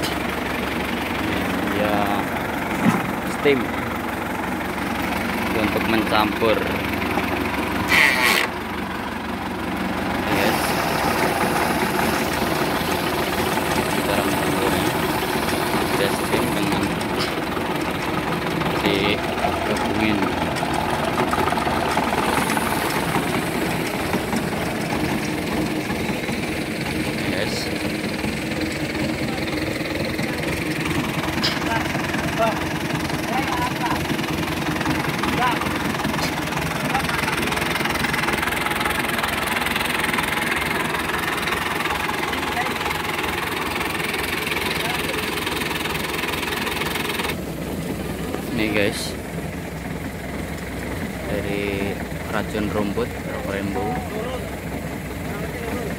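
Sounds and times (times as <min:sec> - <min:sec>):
piston sprayer pump: 0:00.0 - 0:08.6, 0:10.2 - 0:47.4
tractor engine running steadily: 0:00.0 - 0:55.9.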